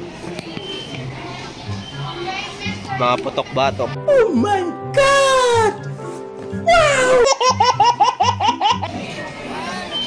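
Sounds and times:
man laughing high-pitched: 6.7s - 8.9s.

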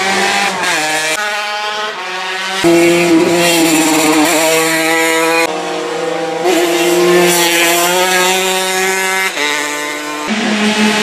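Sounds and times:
racing motorcycle engines: 0.0s - 11.0s.

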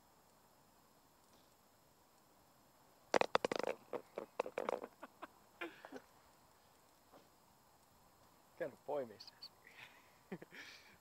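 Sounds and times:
golf ball rattling into cup: 3.1s - 5.0s.

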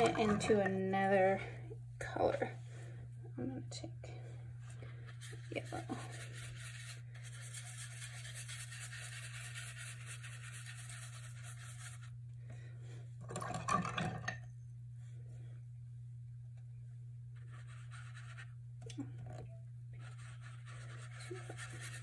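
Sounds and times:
paintbrush scrubbing on paper: 4.8s - 12.2s, 17.4s - 18.6s, 20.0s - 22.0s.

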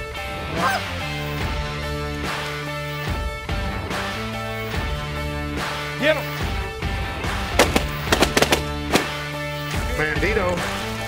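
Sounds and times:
background music: 0.0s - 11.0s
shotgun shots: 7.6s - 9.3s.

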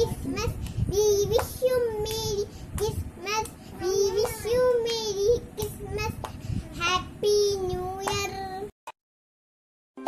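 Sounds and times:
girl singing solo: 0.0s - 8.7s.

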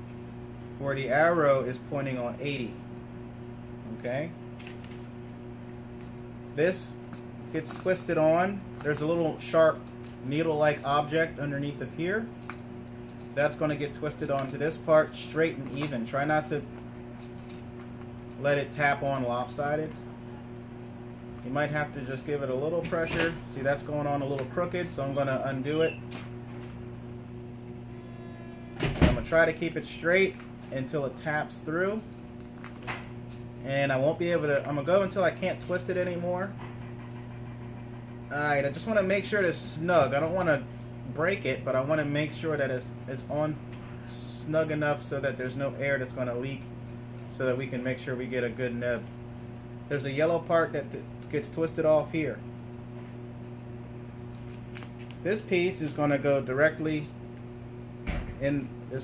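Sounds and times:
steady low hum: 0.0s - 59.0s.

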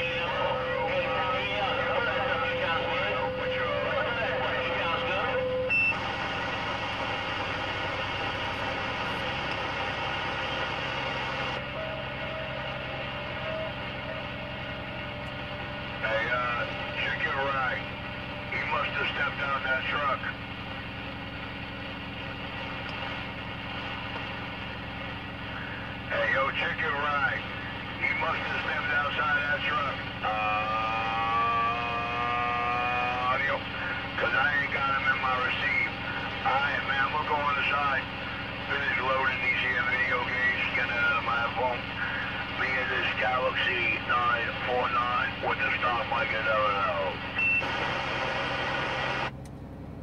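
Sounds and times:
radio static noise: 0.0s - 15.1s, 15.9s - 20.4s, 25.4s - 49.3s
faint garbled radio voices: 0.0s - 21.4s, 22.0s - 49.3s
steady whistle tone: 11.6s - 15.0s.

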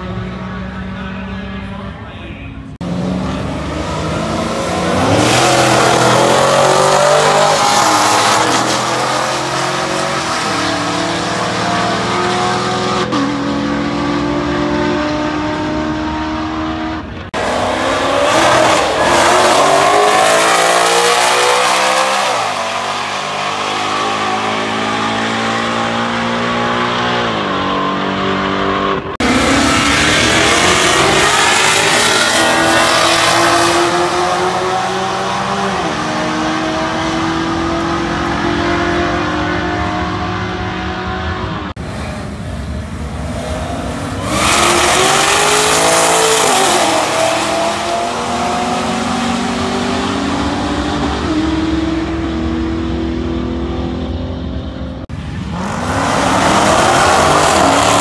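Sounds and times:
car engines revving hard: 2.7s - 58.0s.

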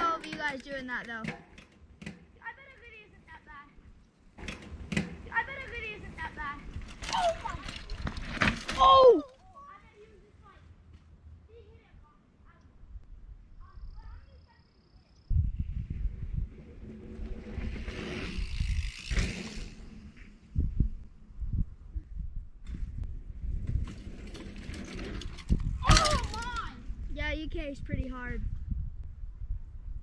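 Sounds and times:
bike tyres rumbling on dirt: 4.4s - 9.2s, 15.4s - 21.8s, 22.6s - 27.0s.

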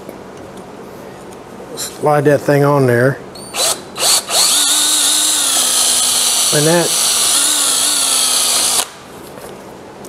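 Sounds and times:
cordless drill cutting wood: 3.6s - 9.0s.

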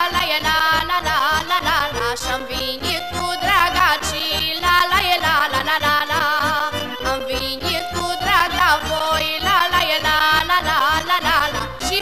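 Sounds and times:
folk song with vibrato: 0.0s - 12.0s.

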